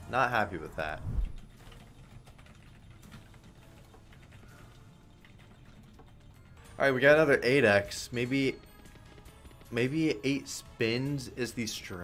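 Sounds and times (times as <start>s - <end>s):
faint clicking and ticking: 1.2s - 6.8s.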